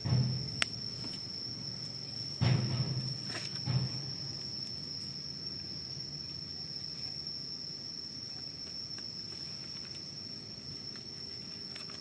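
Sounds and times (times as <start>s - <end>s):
faint outdoor background noise: 0.0s - 12.0s
insect trilling: 0.0s - 12.0s.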